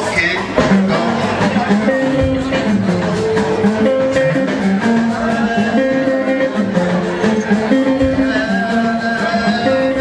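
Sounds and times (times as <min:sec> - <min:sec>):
live band music: 0:00.0 - 0:10.0
man singing into microphone: 0:03.7 - 0:10.0.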